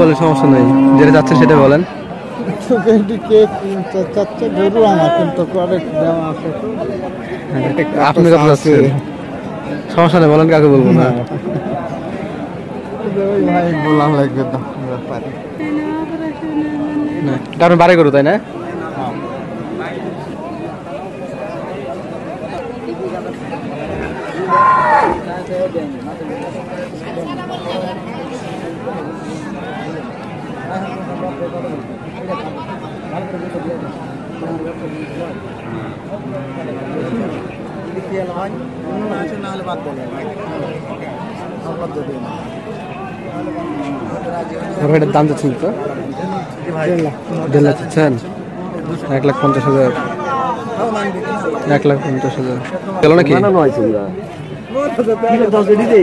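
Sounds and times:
men chattering in a crowd: 0:00.0 - 0:56.0
people talking over one another: 0:00.0 - 0:56.0.

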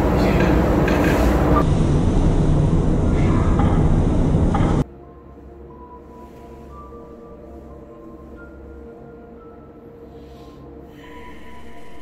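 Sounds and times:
loud rumbling hiss: 0:00.0 - 0:04.6.

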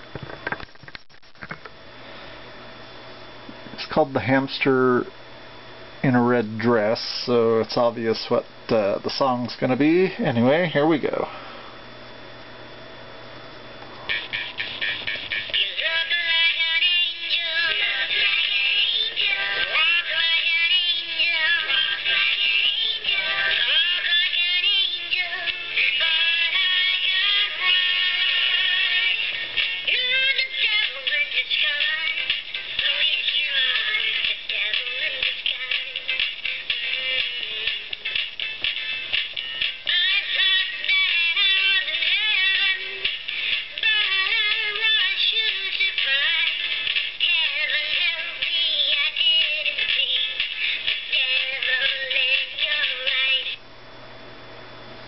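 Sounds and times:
backing music through small speaker: 0:13.6 - 0:53.6.

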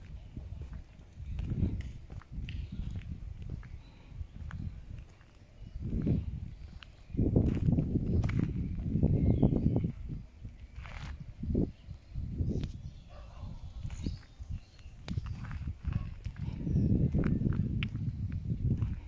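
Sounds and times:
footsteps: 0:00.0 - 0:08.6.

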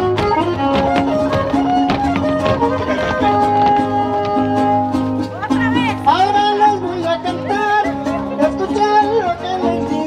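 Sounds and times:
strummed guitars: 0:00.0 - 0:10.0
violin: 0:00.0 - 0:10.0.

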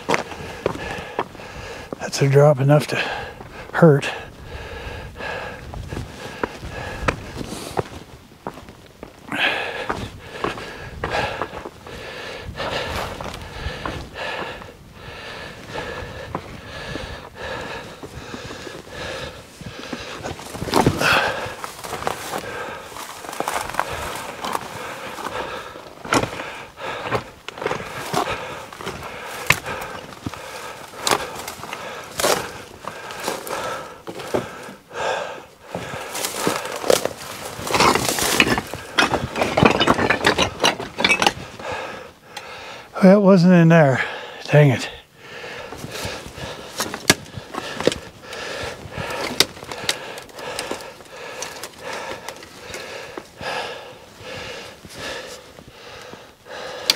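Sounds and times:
footsteps crunching over stones: 0:00.0 - 0:42.1, 0:44.5 - 0:56.3
dry brush crackling against clothing: 0:19.4 - 0:34.7, 0:35.9 - 0:39.3.

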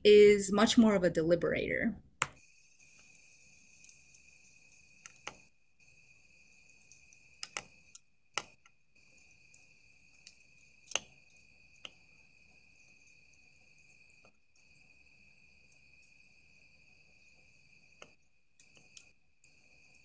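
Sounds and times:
crickets trilling: 0:02.4 - 0:20.0.

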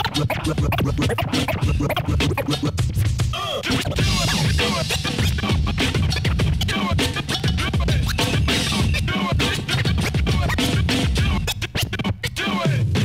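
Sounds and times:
hip-hop beat with thumping bass: 0:00.0 - 0:13.0
turntable scratching: 0:00.0 - 0:13.0.

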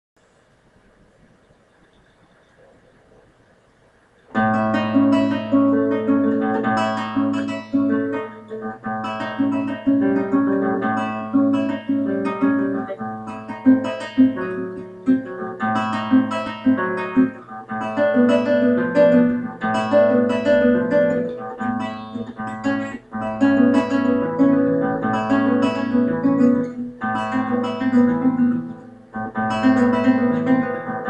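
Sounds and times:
fingerstyle classical guitar: 0:04.3 - 0:31.0.

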